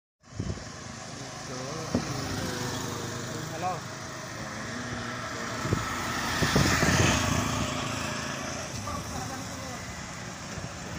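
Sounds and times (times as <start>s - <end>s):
motorcycle engines: 0.2s - 10.9s
vehicle passing close: 0.4s - 10.1s.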